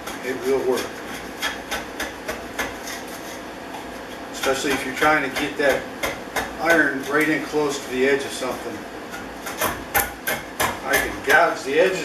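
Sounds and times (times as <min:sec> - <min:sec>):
block plane shaving wood: 0:00.0 - 0:03.4.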